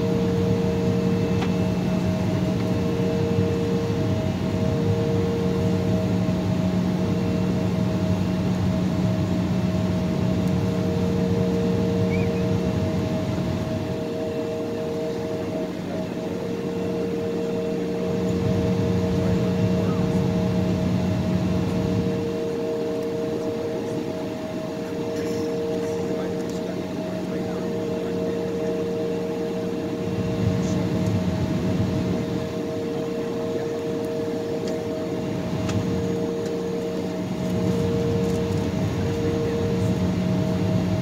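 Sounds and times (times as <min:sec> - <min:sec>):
jet engines humming while taxiing: 0:00.0 - 0:41.0.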